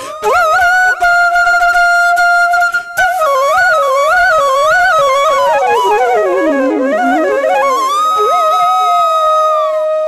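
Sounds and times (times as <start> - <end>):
flute holding long notes: 0.0 - 10.0.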